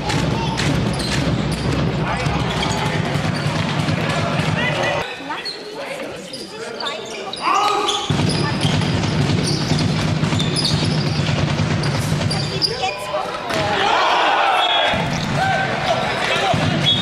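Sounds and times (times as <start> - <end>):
ball bouncing on hall floor: 0.0 - 5.0, 8.0 - 13.8, 14.9 - 17.0
players shouting: 0.0 - 5.1, 12.9 - 17.0
crowd noise: 0.0 - 17.0.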